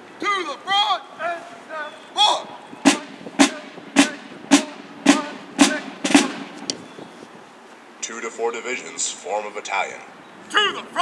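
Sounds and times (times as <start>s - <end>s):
field drum hits: 2.8s - 6.7s.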